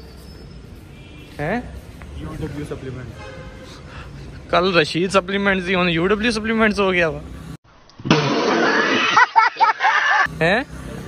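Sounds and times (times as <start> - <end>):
man laughing in short bursts: 8.6 - 10.3.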